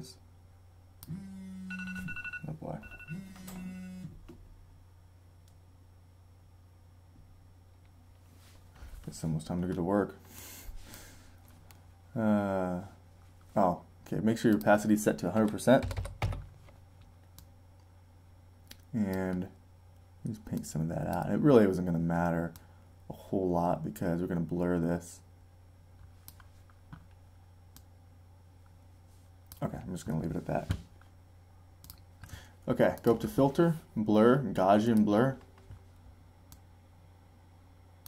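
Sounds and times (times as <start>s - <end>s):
low electrical hum: 0.0s - 38.0s
phone vibrating buzz: 1.1s - 4.2s.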